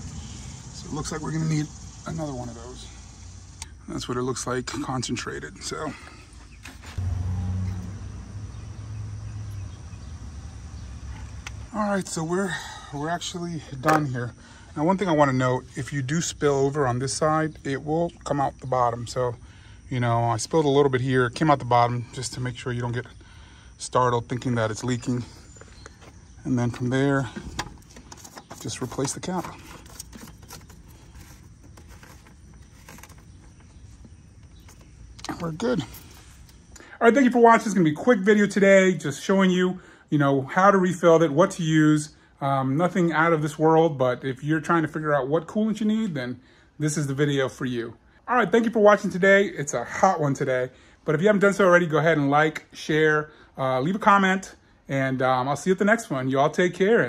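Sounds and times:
low outdoor background: 0.0s - 57.0s
low engine hum: 6.9s - 11.7s.

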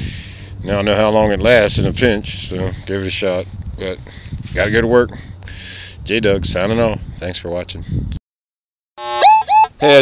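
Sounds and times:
voice with rising pitched calls: 9.0s - 10.0s.

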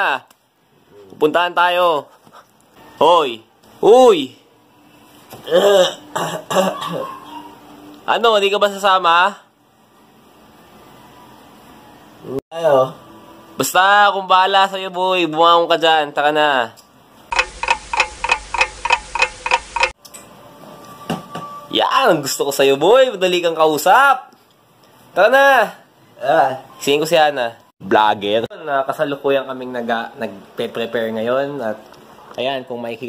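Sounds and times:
bell-like clock ticks: 17.3s - 20.0s.

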